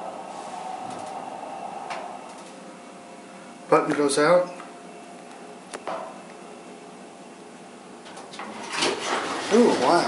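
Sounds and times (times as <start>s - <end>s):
elevator mechanical hum: 0.0s - 10.0s.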